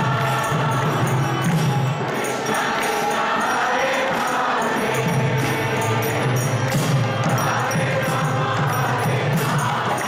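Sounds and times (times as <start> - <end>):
congregation singing together: 0.0 - 10.0.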